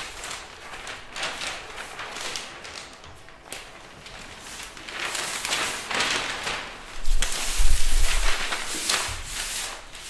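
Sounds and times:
paper sheets rustling and flapping: 0.0 - 10.0
sharp paper swish: 4.4 - 10.0.

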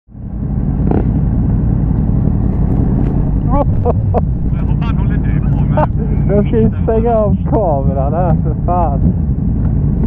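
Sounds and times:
motorcycle engine running: 0.1 - 10.0
road and wind rumble: 0.1 - 10.0
person laughing: 3.4 - 6.8.

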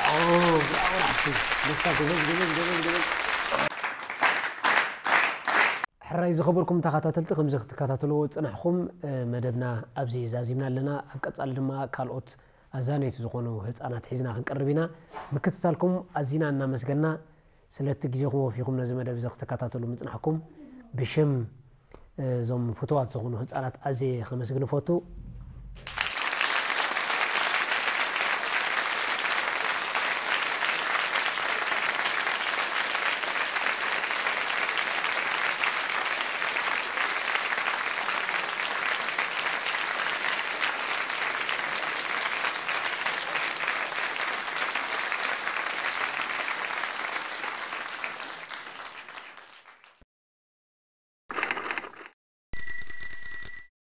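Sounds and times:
applause: 0.0 - 5.9, 25.8 - 50.0.

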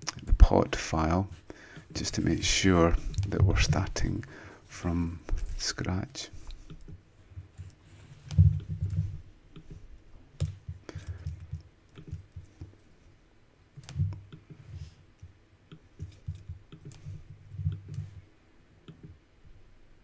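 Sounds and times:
computer mouse clicking: 10.4 - 12.7, 15.2 - 18.2.

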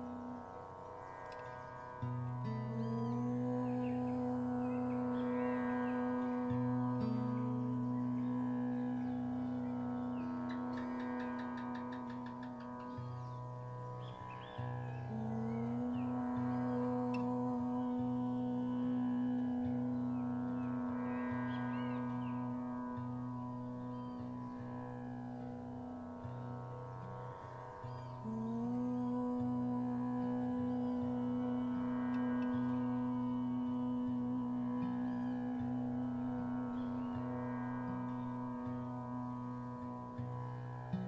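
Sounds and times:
instrumental drone: 0.0 - 41.0
man and woman chanting om: 0.0 - 41.0.

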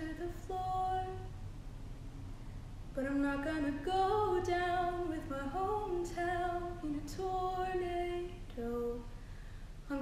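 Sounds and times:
woman singing: 0.0 - 1.4, 2.9 - 9.2.

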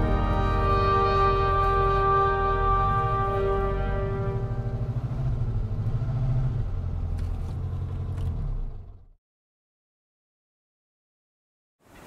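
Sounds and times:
sustained music chord: 0.0 - 5.6
car engine rumbling: 0.0 - 9.2.

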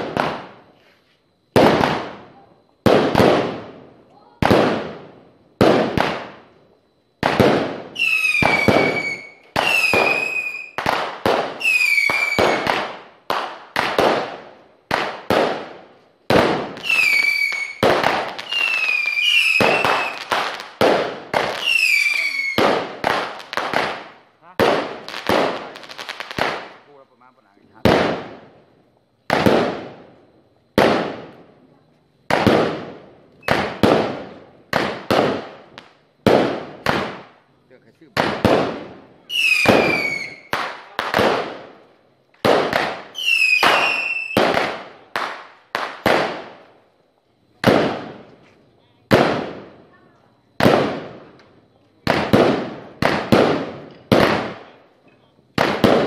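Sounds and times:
fireworks banging: 0.0 - 6.6, 7.2 - 46.8, 47.6 - 56.0
firework whistle: 7.2 - 13.5, 16.3 - 23.8, 39.2 - 41.4, 42.5 - 46.4.

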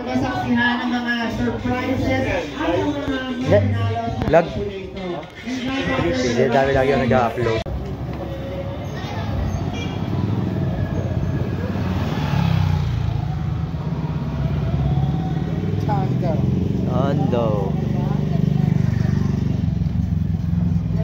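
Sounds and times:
motorcycles and cars passing: 0.0 - 21.0
voices: 0.0 - 21.0.

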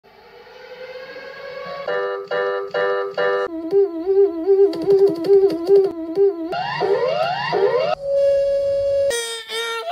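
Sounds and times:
warbling electronic alarm: 0.6 - 9.4.

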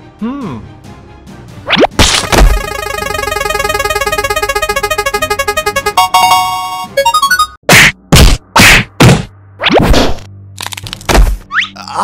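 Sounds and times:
loud cartoon whacks: 1.8 - 2.6, 7.7 - 10.3.

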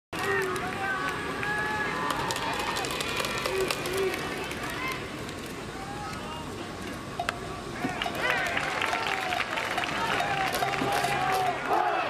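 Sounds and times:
stadium ambience: 0.1 - 12.0.

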